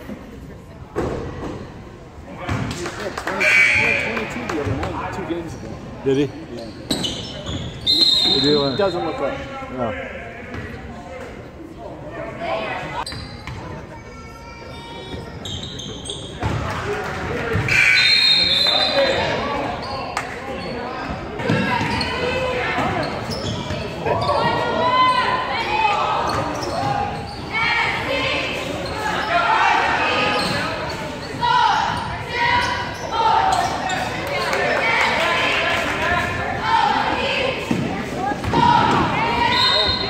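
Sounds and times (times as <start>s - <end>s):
shouts and chatter: 3.3s - 5.2s, 12.0s - 16.0s, 17.1s - 40.0s.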